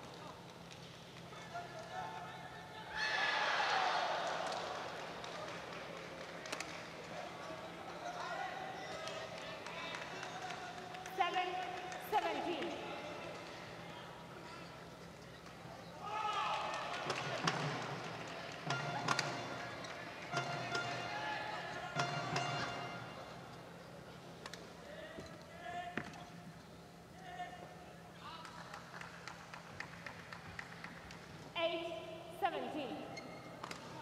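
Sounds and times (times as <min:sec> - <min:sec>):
crowd voices and shouts: 0:01.2 - 0:23.7.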